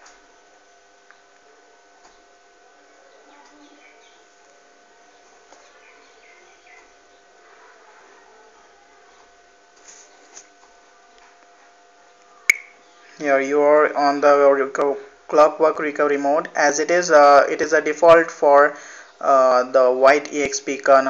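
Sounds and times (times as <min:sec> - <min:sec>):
faint steady hum: 0:00.0 - 0:21.0
faint chirps: 0:00.4 - 0:07.9, 0:12.0 - 0:13.2
sharp click: 0:12.5 - 0:12.7.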